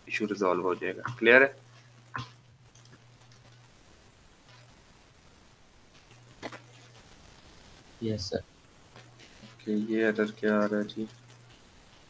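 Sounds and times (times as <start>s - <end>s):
faint low electrical hum: 0.0s - 12.0s.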